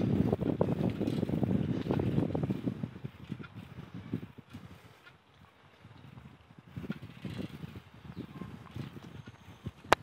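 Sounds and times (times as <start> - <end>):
bicycle rattling over pavement: 0.0 - 10.0.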